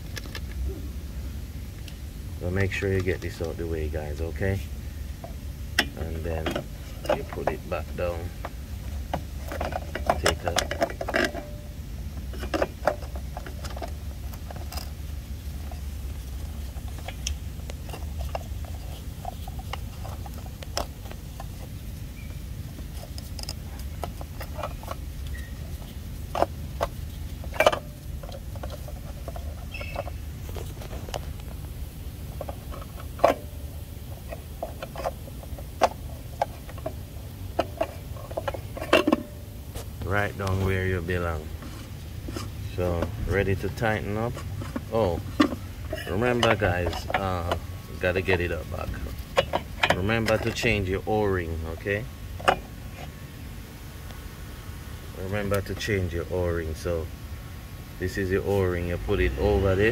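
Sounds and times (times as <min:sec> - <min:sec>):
hands handling plastic parts: 0:00.0 - 0:00.6, 0:02.6 - 0:53.4
steady low hum: 0:00.0 - 0:59.9.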